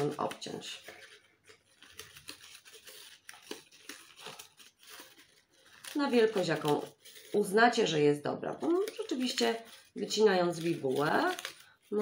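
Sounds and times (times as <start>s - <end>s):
scissors snipping paper: 0.0s - 7.6s, 8.6s - 12.0s
paper crinkling: 0.0s - 12.0s.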